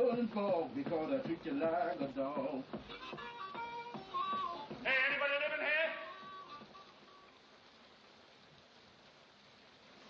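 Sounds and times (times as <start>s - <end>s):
faint soundtrack hiss: 0.0s - 10.0s
blues harmonica notes: 2.7s - 7.4s.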